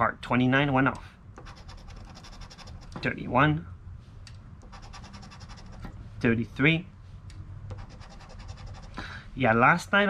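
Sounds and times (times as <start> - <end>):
coin scraping scratch-off ticket: 1.4 - 3.0, 4.7 - 5.9, 7.7 - 9.0.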